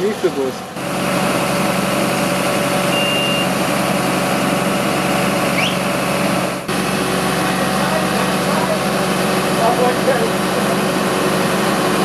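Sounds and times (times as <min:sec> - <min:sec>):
truck engine running: 0:00.0 - 0:12.0
short high beep: 0:02.8 - 0:03.5.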